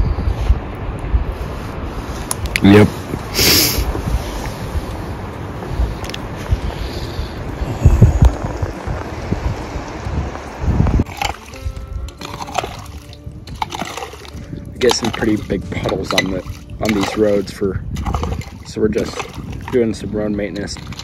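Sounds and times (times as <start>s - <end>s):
rumbling with low bumps: 0.0s - 21.0s
music with held notes: 11.0s - 17.4s.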